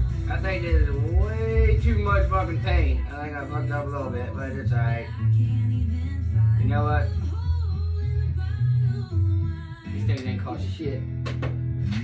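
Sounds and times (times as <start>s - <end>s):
country song on radio: 0.0s - 12.0s.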